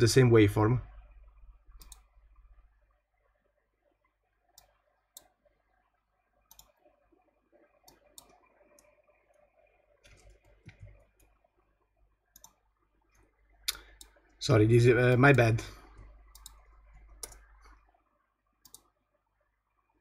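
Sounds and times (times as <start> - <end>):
faint mouse clicks: 1.8 - 2.1, 4.5 - 5.4, 6.5 - 6.8, 7.8 - 9.4, 12.3 - 14.4, 15.9 - 17.8, 18.6 - 19.0.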